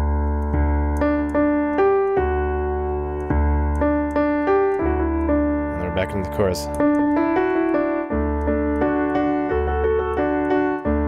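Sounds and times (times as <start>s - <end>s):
low piano bass octaves: 0.0s - 11.0s
right-hand piano notes: 0.0s - 11.0s.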